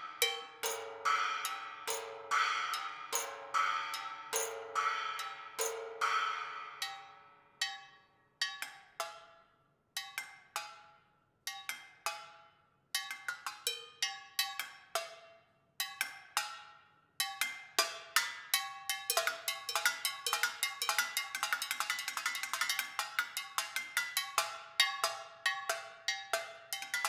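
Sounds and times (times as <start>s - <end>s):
metal percussion strikes: 0.0s - 9.2s.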